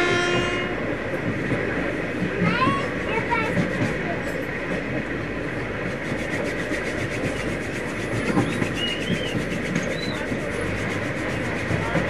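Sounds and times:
train rumble inside carriage: 0.0s - 12.0s.

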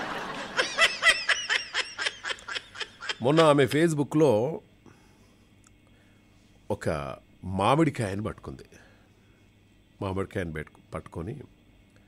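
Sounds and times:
person giggling: 0.0s - 3.6s
breathy hiss: 4.7s - 7.2s, 8.6s - 10.0s.

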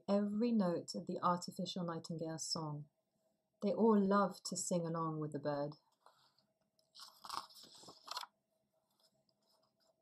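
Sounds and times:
page turning rustle: 6.0s - 8.3s.

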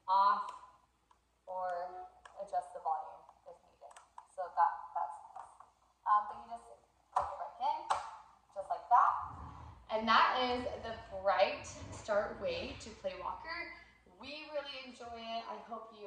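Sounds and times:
woman talking: 0.0s - 0.5s, 1.5s - 8.0s, 8.6s - 16.0s.

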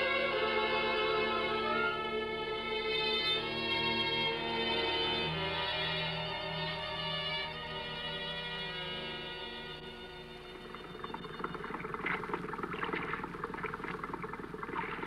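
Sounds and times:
bowed strings music: 0.0s - 12.3s
low steady hum: 10.0s - 15.0s
water splashing against boat: 10.6s - 15.0s.

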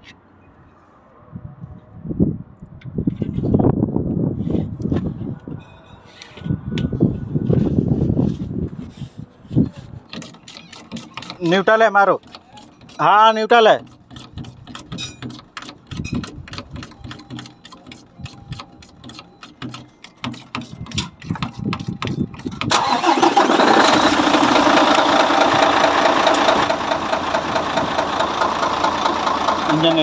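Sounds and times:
truck diesel engine starting and running: 9.9s - 30.0s.

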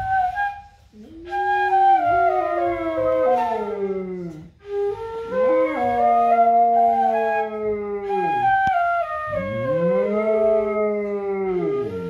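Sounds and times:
bamboo flute: 0.0s - 12.0s
dog howling: 1.3s - 4.5s, 5.3s - 12.0s.

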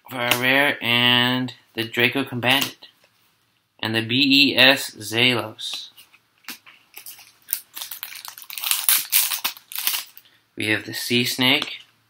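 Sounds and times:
foil wrapper crinkling and tearing: 6.9s - 10.2s.

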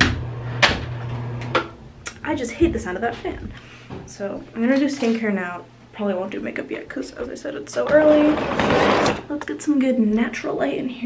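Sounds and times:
exhaust fan humming: 0.0s - 10.2s.

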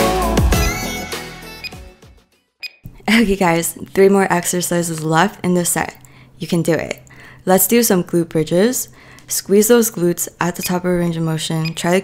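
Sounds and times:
electronic music: 0.0s - 2.2s.

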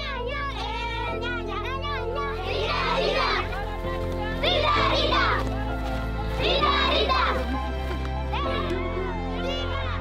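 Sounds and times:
music of sustained chords: 0.0s - 10.0s.

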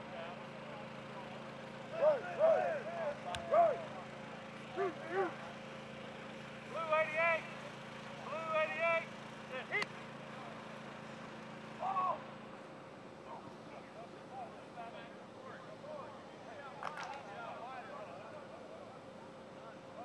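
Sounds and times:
players and coaches shouting: 1.7s - 9.9s, 11.8s - 12.4s.

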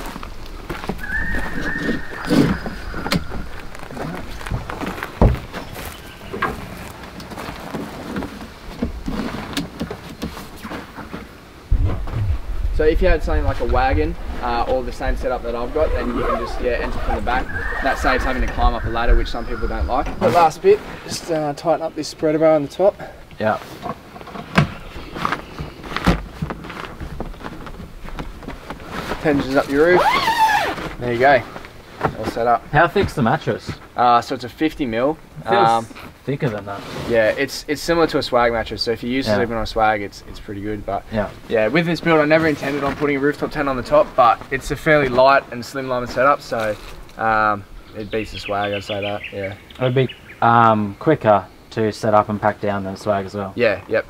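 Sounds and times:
tent sections knocking and clicking: 0.0s - 12.4s, 23.4s - 34.1s
short squeak: 1.0s - 3.5s
thump: 4.5s - 5.6s, 11.7s - 12.4s.

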